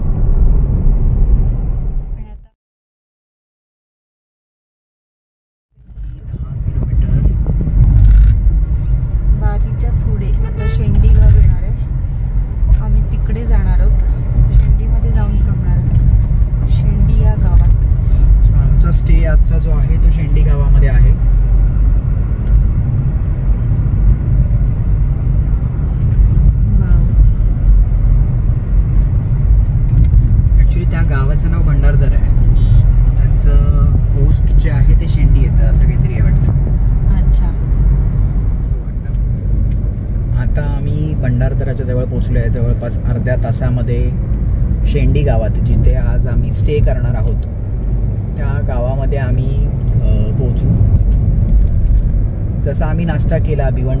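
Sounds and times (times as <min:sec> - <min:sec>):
car road rumble: 0:00.0 - 0:02.6, 0:05.7 - 0:54.0.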